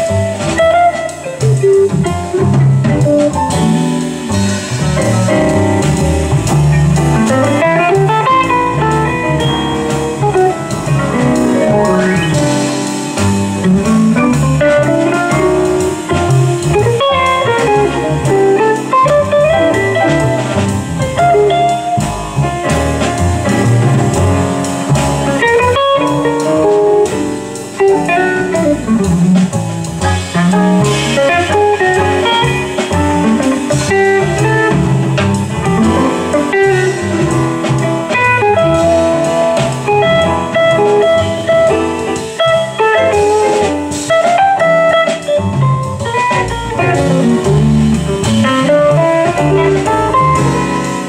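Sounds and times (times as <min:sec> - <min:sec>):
bass: 0:00.0 - 0:51.0
drums: 0:00.0 - 0:51.0
electric guitar solo: 0:06.8 - 0:12.6, 0:38.1 - 0:51.0.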